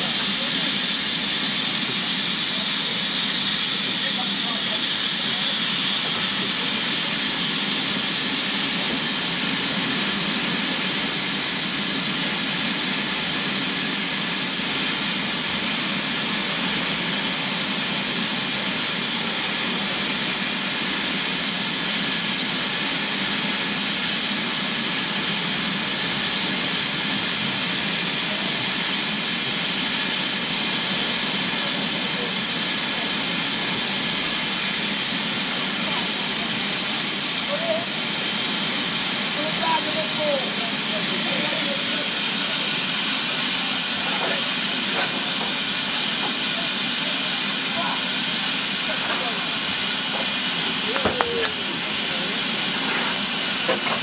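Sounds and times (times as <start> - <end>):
steam locomotive hissing steam: 0.0 - 54.0.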